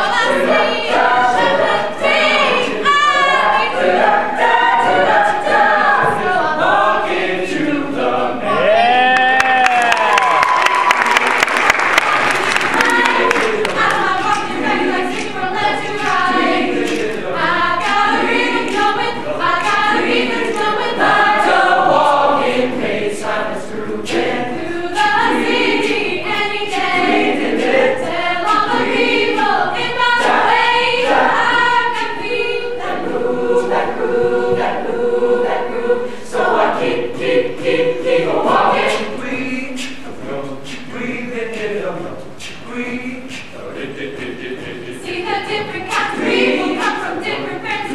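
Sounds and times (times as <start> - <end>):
choir singing a cappella: 0.0 - 9.0, 11.4 - 47.9.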